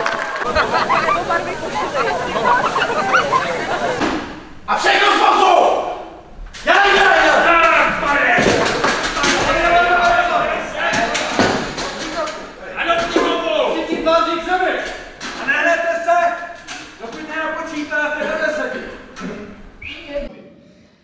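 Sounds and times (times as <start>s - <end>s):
actors making mooing calls: 0.4s - 4.3s.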